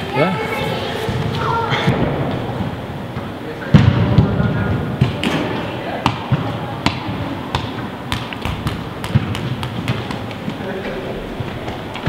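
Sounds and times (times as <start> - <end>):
steady background hum: 0.0 - 12.0
balls striking floor: 1.1 - 12.0.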